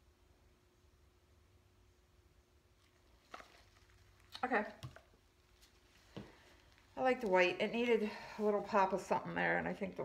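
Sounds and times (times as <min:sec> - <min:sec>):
faint steady hum: 0:00.0 - 0:10.0
woman speaking: 0:04.4 - 0:04.9, 0:07.0 - 0:10.0.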